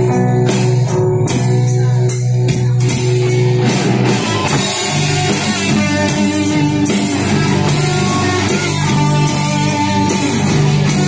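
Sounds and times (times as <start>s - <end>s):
acoustic guitar: 0.0s - 11.0s
electric guitar: 0.0s - 11.0s.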